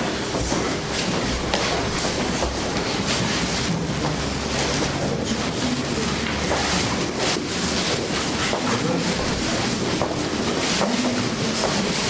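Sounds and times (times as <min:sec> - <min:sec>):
people moving about a hall: 0:00.0 - 0:12.0.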